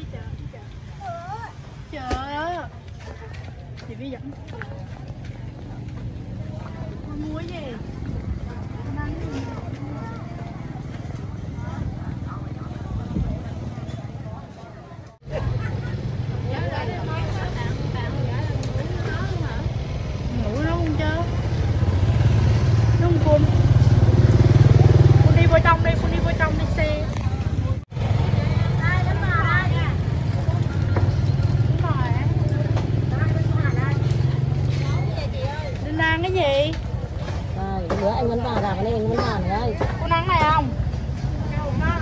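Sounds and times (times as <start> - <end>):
motorbike engines: 0.0 - 42.0
people's voices: 0.0 - 42.0
motorbike passing close: 4.7 - 42.0.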